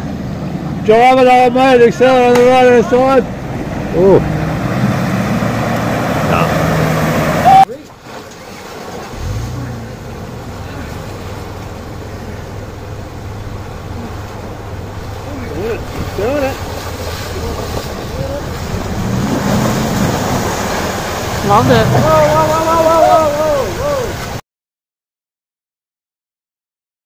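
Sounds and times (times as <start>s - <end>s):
off-road vehicle engine running: 0.0s - 24.4s
water sloshing: 1.9s - 24.4s.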